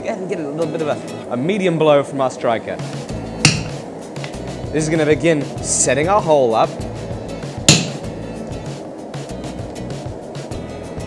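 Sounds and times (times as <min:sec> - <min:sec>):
sledgehammer striking metal punch: 0:03.4 - 0:03.8, 0:07.7 - 0:08.0.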